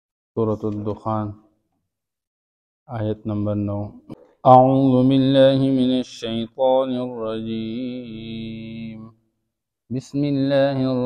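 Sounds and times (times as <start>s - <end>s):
man chanting melodically: 2.9s - 9.2s, 9.9s - 11.0s.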